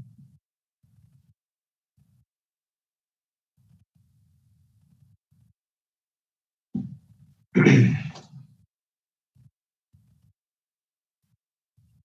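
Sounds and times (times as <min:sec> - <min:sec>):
person clearing throat: 0:07.6 - 0:08.3.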